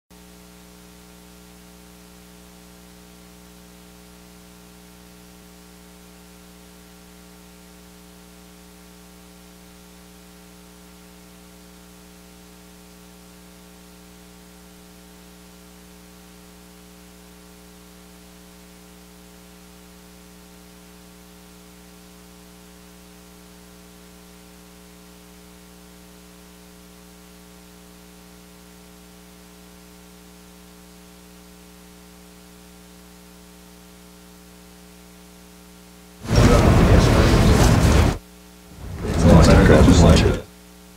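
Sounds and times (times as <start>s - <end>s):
electrical mains hum: 36.2s - 40.5s
static hiss: 36.2s - 40.5s.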